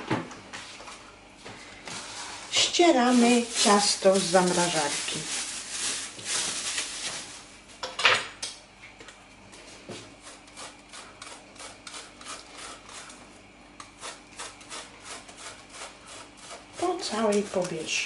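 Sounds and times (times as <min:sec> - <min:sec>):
plastic film rustling: 0:02.0 - 0:07.7
grater rasping through dough: 0:02.2 - 0:05.0, 0:10.0 - 0:18.0.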